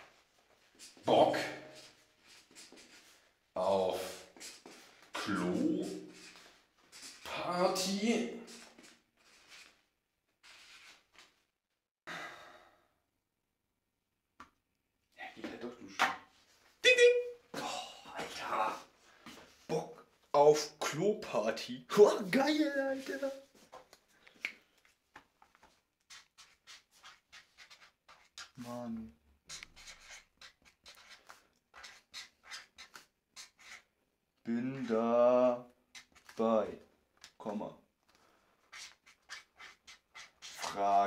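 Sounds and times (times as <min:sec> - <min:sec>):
marker scratching on paper: 0:01.8 - 0:03.2, 0:04.3 - 0:07.3, 0:10.4 - 0:11.1, 0:26.0 - 0:28.6, 0:29.5 - 0:33.9, 0:35.9 - 0:36.4, 0:38.6 - 0:41.0
person sighing: 0:12.1 - 0:12.9, 0:17.5 - 0:18.1.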